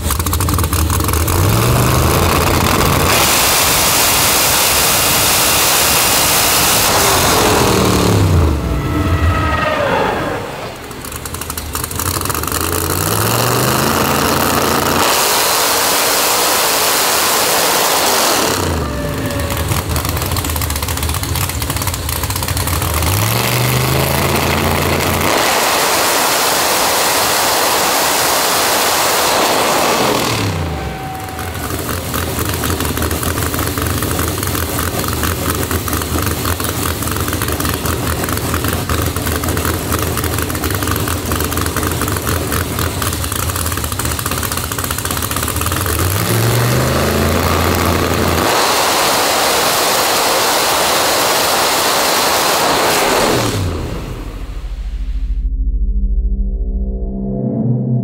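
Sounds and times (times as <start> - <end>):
car engine revving on dyno: 0.0 - 55.0.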